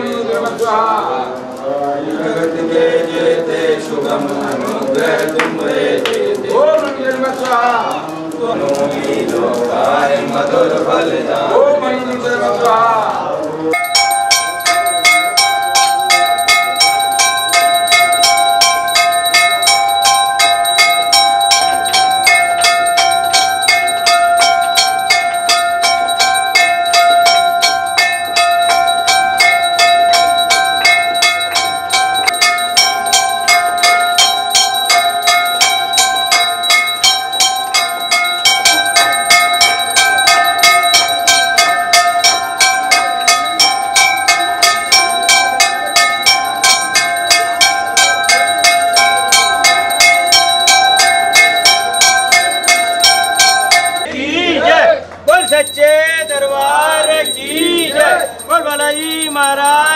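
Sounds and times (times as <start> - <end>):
temple bells ringing: 13.7 - 54.1, 55.3 - 59.9.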